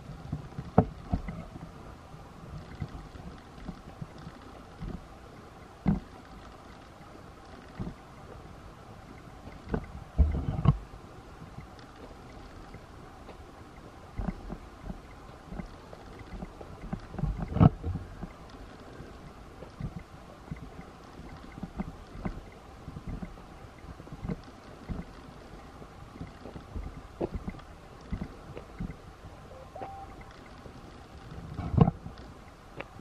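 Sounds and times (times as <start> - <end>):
steady hiss: 0.0 - 33.0
short note: 29.5 - 30.3.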